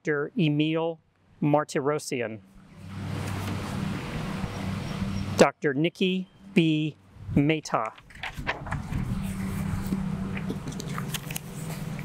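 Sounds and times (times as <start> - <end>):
low mechanical hum: 6.4 - 12.0
crackling noise: 7.8 - 12.0.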